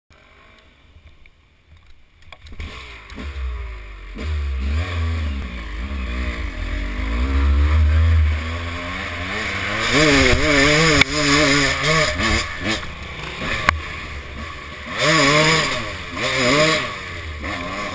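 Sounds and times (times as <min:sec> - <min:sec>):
dirt bike engine revving: 0:02.6 - 0:17.9
heavy low rumble: 0:03.4 - 0:15.0.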